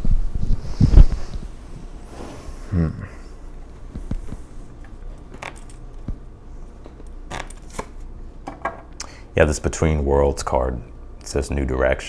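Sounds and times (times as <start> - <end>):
cards clicking and snapping: 6.9 - 8.0.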